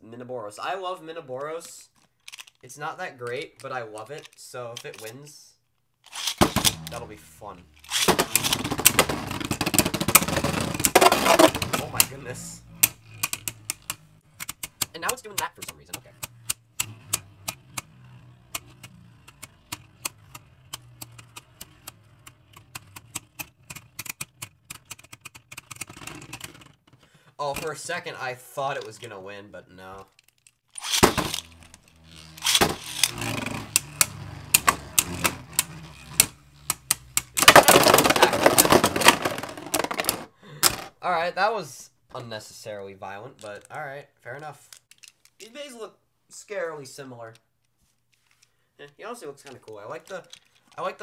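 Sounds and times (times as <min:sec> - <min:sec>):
spinning tops clacking together: 0:06.1 - 0:07.0, 0:07.7 - 0:26.8, 0:30.7 - 0:40.9
click of top being handled: 0:44.7 - 0:45.5.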